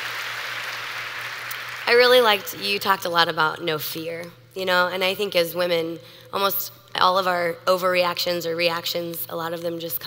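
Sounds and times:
audience applauding: 0:00.0 - 0:01.9
woman speaking: 0:01.9 - 0:10.0.

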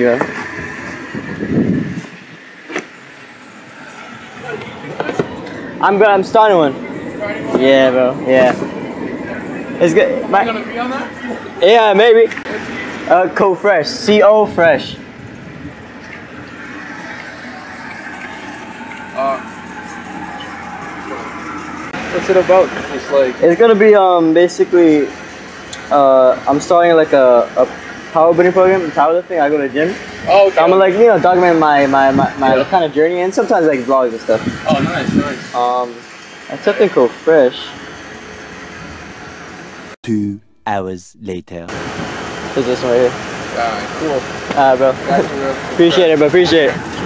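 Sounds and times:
vehicle engine idling: 0:14.7 - 0:35.0
person speaking a syllable: 0:40.0 - 0:41.7.

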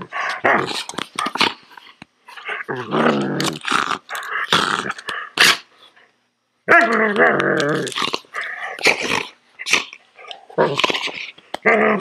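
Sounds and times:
dog growling and snarling: 0:00.0 - 0:01.6, 0:02.4 - 0:05.7, 0:06.7 - 0:12.0.

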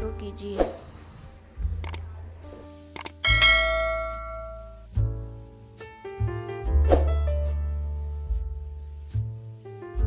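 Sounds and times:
background music bass: 0:00.0 - 0:10.0
mouse click: 0:03.0 - 0:03.2
bell chime: 0:03.2 - 0:04.8.

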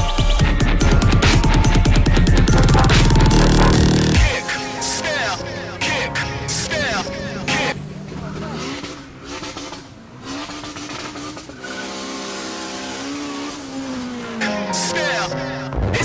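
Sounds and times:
car engine revving hard: 0:00.9 - 0:04.4, 0:06.2 - 0:14.8
tyres spinning: 0:05.2 - 0:14.4.

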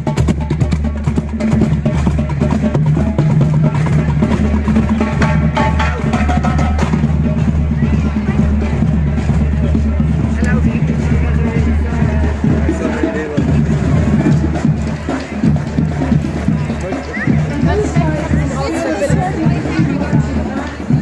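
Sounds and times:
crowd talking: 0:00.0 - 0:21.0
marching band drums and brass: 0:00.0 - 0:21.0.

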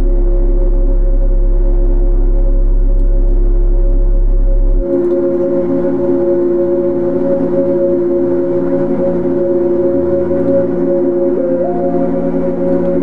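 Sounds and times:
ambient electronic drone: 0:00.0 - 0:13.0
low bass note: 0:00.0 - 0:13.0.

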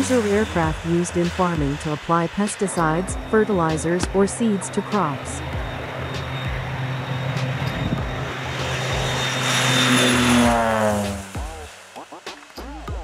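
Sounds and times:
aircraft engine and propeller drone: 0:00.0 - 0:13.0.

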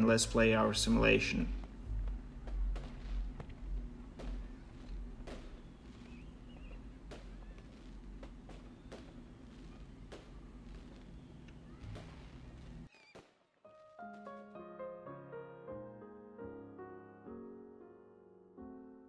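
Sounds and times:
low hum: 0:00.0 - 0:12.9.

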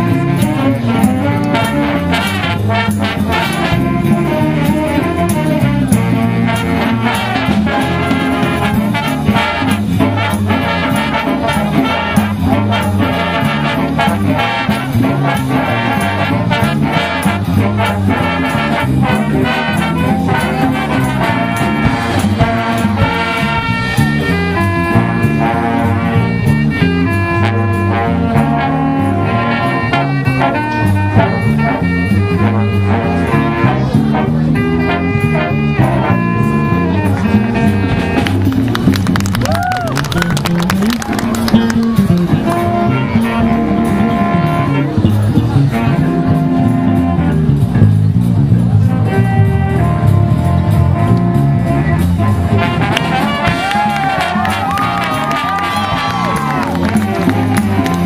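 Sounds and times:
big band playing swing jazz: 0:00.0 - 0:58.0.

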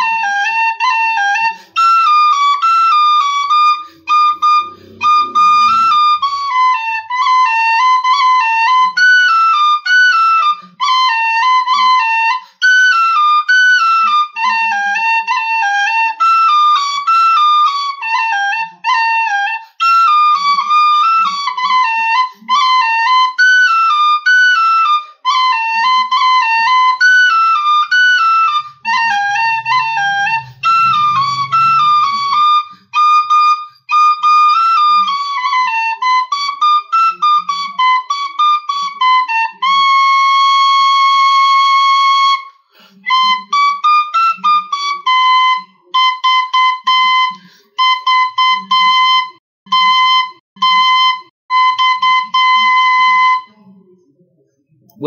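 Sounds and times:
tin whistle melody: 0:00.0 - 0:53.6.

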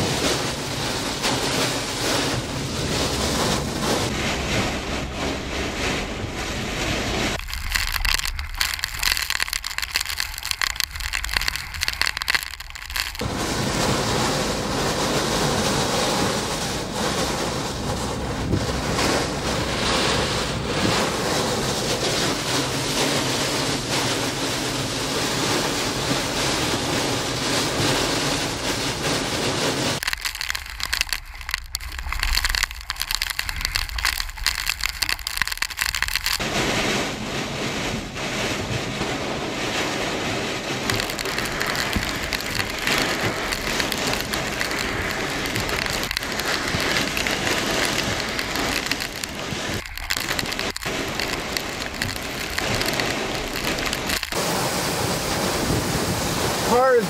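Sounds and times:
wind and rain on a car: 0:00.0 - 0:57.0.

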